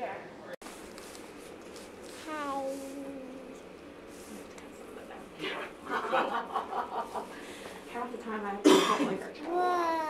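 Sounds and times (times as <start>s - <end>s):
person coughing: 8.6s - 9.2s.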